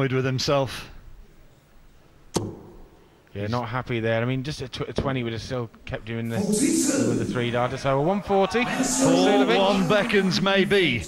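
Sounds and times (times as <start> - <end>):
dart striking dartboard: 2.4 - 3.0
low background hush: 5.2 - 11.0.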